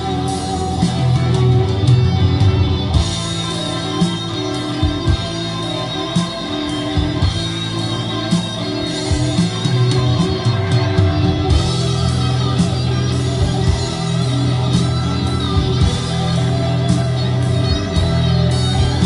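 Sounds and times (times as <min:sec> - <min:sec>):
rock music over loudspeakers: 0:00.0 - 0:19.0.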